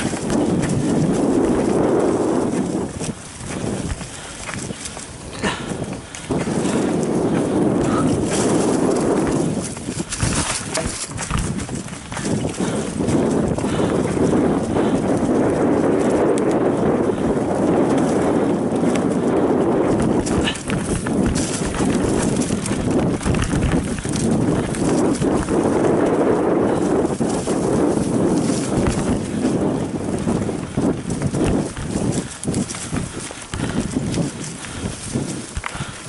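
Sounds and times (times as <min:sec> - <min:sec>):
bike knocking and rattling: 0:00.0 - 0:36.0
bike tyres crunching through leaves: 0:00.0 - 0:36.0.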